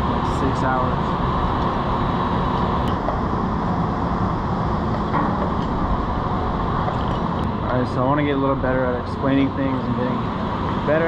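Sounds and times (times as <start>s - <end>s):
machinery droning: 0.0s - 11.0s.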